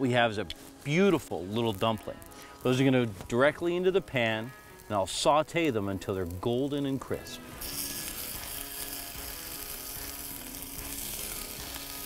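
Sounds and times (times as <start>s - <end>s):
food sizzling in oil in a pan: 0.6s - 12.0s.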